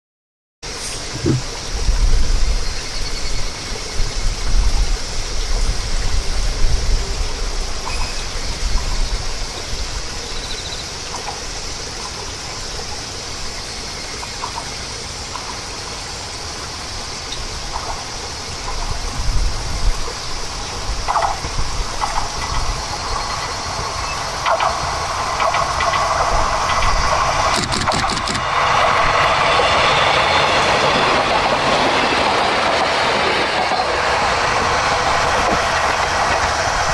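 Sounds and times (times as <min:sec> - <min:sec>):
diesel railcar engine passing: 0:00.7 - 0:36.9
wheel clicks over rail joints: 0:24.4 - 0:28.5.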